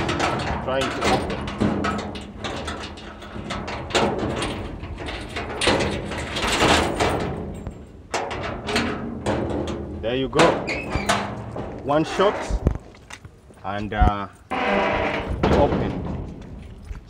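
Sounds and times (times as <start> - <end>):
steel gate rattling and clanking: 0.0 - 12.8, 14.4 - 16.9.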